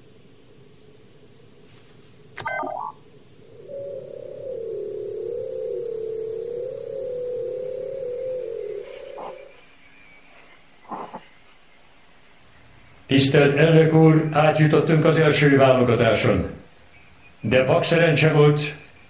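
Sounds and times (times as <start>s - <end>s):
electronic blip: 2.4s - 3.0s, 3.6s - 9.6s
loud electronic beep: 2.4s - 3.0s
wavering electronic tone with whine: 2.4s - 9.9s.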